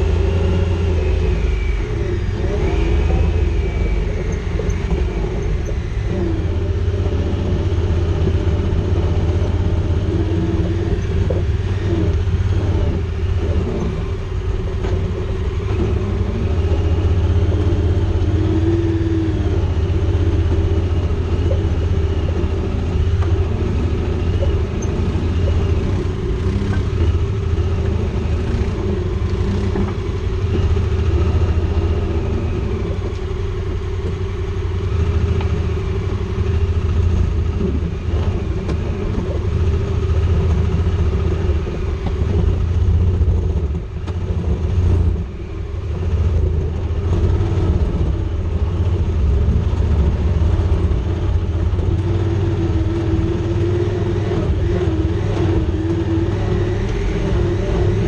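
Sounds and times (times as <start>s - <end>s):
deep engine rumble: 0.0s - 58.0s.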